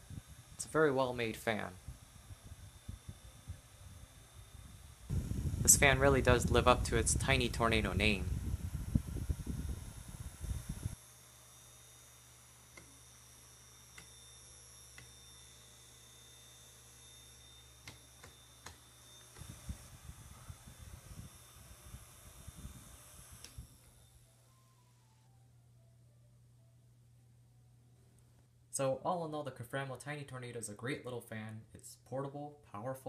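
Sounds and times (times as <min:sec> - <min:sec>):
small fan motor humming: 0:00.0 - 0:27.0
fan whine: 0:00.0 - 0:28.0.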